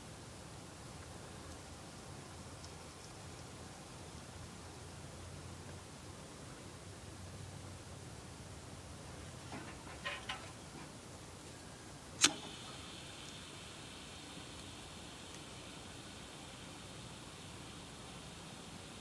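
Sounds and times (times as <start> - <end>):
faint hiss of flame: 8.6 - 19.0
lighter being struck: 12.2 - 12.6.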